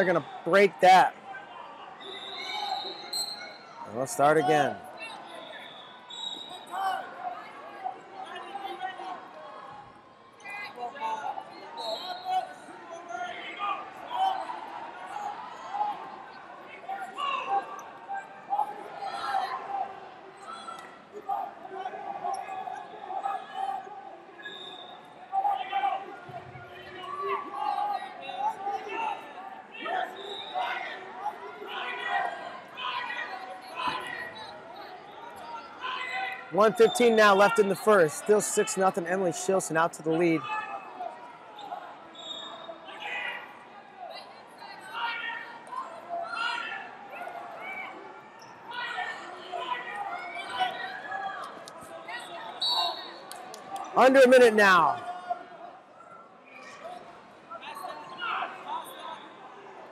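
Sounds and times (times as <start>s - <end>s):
distant voices in gym hall: 0.0s - 59.9s.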